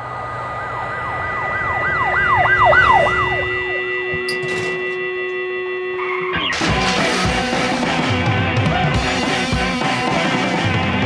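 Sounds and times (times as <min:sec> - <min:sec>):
emergency vehicle siren: 0:00.0 - 0:06.6
steady held tones: 0:00.1 - 0:07.6.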